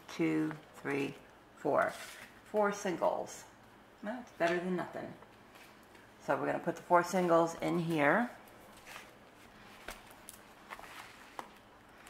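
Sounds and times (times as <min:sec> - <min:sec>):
paper bills rustling: 0:08.5 - 0:12.0.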